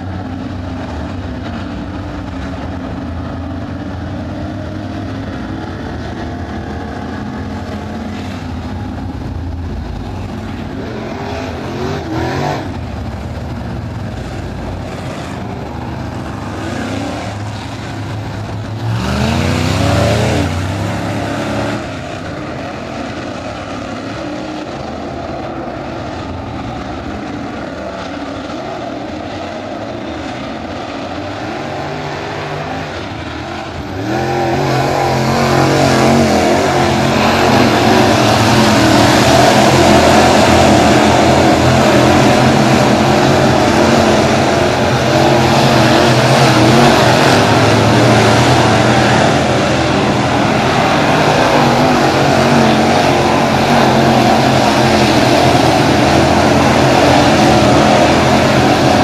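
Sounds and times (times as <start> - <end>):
race car engines passing: 0.0 - 59.0.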